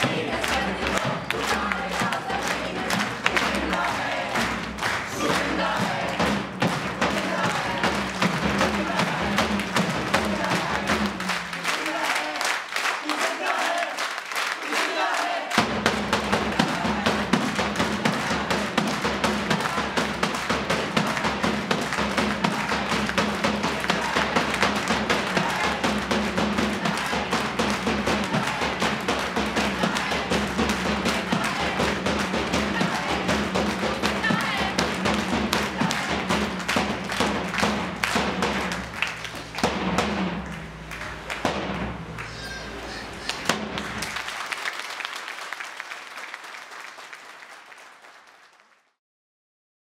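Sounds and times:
group chanting: 0.0 - 38.8
hand claps: 0.0 - 48.9.

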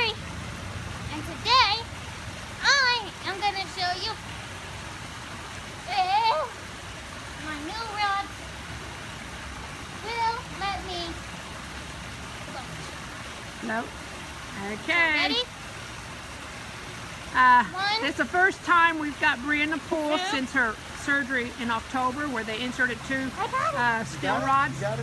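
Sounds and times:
waterfall rushing into pool: 0.0 - 25.0.

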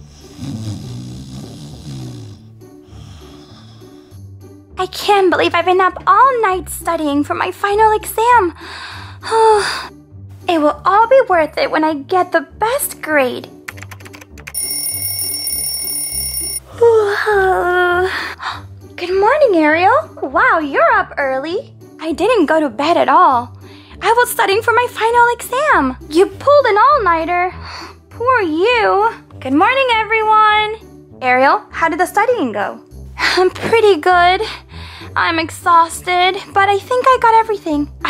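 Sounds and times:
snoring sound effect: 0.0 - 4.2
background music: 0.0 - 38.0
electronic alarm tone: 14.6 - 16.6.

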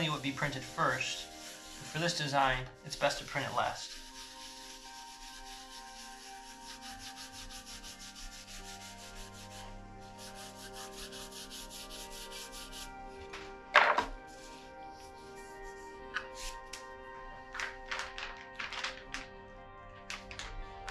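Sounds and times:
stiff brush scrubbing wooden block: 0.0 - 12.9.

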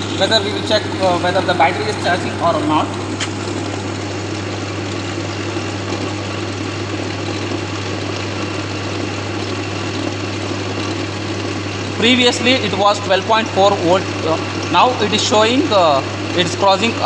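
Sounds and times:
generator drone with whir: 0.0 - 17.0.

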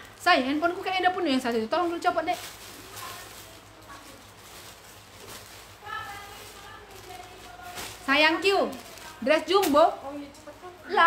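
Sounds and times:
room noise: 0.0 - 11.0
faint distant speech: 2.5 - 11.0.

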